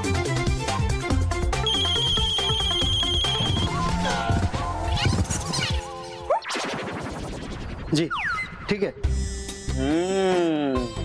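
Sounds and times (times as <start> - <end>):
background music with steady beat: 0.0 - 4.9
warbling electronic alarm tone: 1.7 - 3.5.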